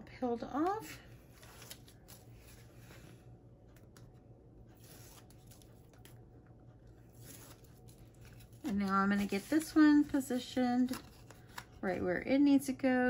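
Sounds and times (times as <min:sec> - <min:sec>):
paper being handled: 0:04.7 - 0:06.2, 0:07.0 - 0:12.0.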